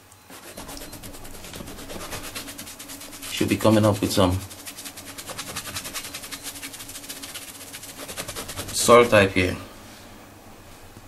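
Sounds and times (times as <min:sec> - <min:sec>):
faint low hum: 0:00.0 - 0:11.0
small machine rasping pulse: 0:00.1 - 0:09.0.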